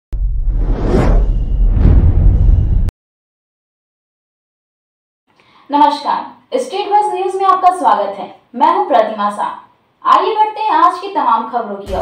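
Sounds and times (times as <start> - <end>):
deep bass rumble: 0.1 - 2.9
whoosh: 0.2 - 2.9.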